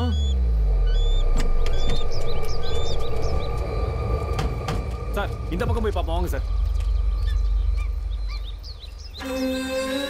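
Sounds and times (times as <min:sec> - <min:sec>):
high bird-like chirps: 0:00.0 - 0:04.4, 0:05.3 - 0:10.0
low rumble: 0:00.0 - 0:09.2.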